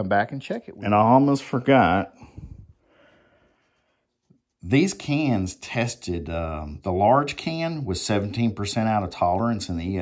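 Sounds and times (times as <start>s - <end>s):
faint breath: 2.1s - 4.2s.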